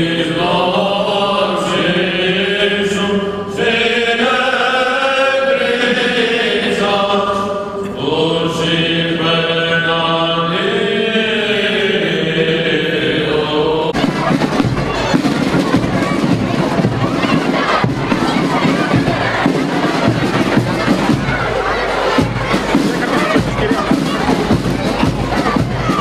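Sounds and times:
male voices chanting: 0.0s - 26.0s
outdoor crowd noise: 0.0s - 26.0s.

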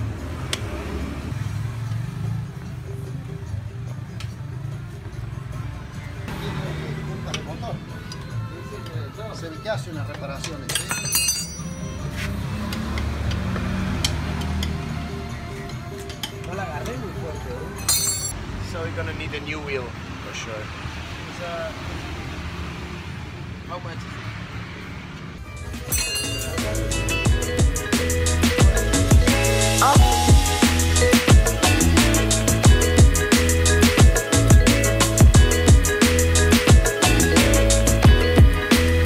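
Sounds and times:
background music: 0.0s - 19.3s, 25.4s - 39.0s
metal tools clinking: 10.4s - 12.2s, 17.8s - 18.4s, 25.8s - 26.7s.

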